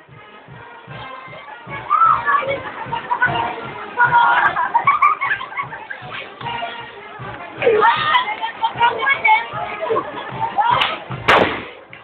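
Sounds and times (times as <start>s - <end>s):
bass drum beat: 0.0s - 12.0s
street band music: 0.0s - 12.0s.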